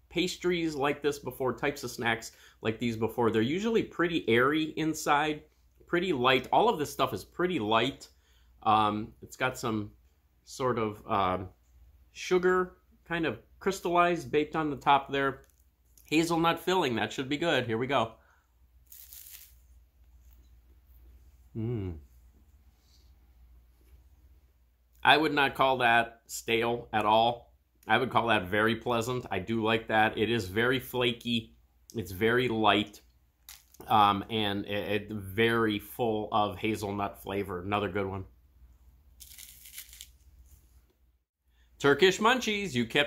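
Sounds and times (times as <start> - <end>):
pastry crackling as bitten: 18.9 - 19.6, 39.2 - 40.2.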